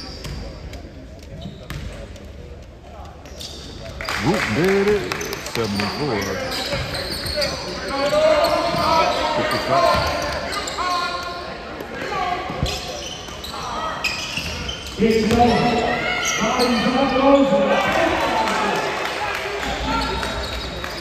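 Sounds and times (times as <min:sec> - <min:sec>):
sneakers squeaking on hardwood: 0:03.2 - 0:03.9, 0:05.1 - 0:11.2, 0:12.4 - 0:17.7, 0:19.8 - 0:21.0
players and spectators shouting: 0:15.0 - 0:20.5
basketball bouncing: 0:15.2 - 0:15.7.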